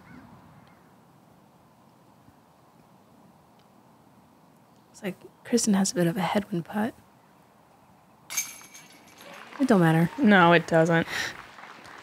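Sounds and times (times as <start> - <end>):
disc hitting basket chains: 8.3 - 9.5.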